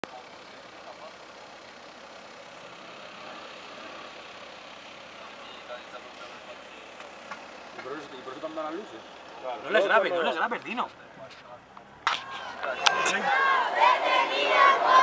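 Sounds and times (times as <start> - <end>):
street traffic noise: 0.0 - 15.0.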